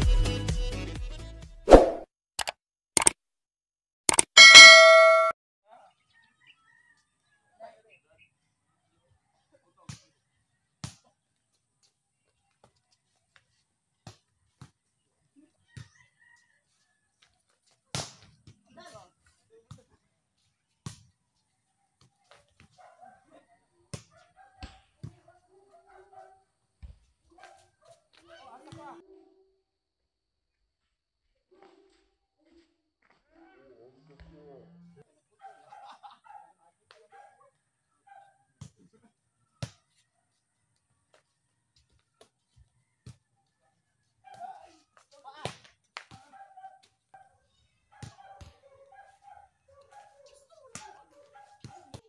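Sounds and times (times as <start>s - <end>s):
quick clicks: 1.8s - 3.2s, 4.1s - 4.6s
bright ringing chime: 4.4s - 5.3s.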